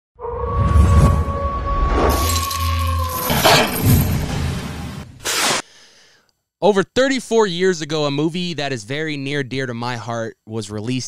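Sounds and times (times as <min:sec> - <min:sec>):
low rumble: 0:00.2 - 0:05.2
held high tone: 0:00.4 - 0:04.6
sharp hits with glassy shimmer: 0:02.1 - 0:04.8.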